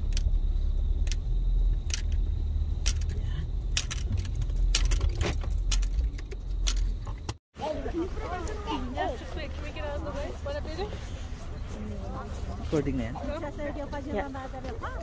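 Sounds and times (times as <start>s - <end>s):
low rumble inside car: 0.0s - 7.4s
sharp clicks: 1.0s - 7.4s.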